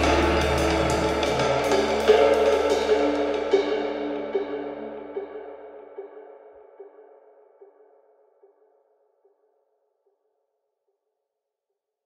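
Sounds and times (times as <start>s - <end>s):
echoing music note: 0.0s - 5.6s.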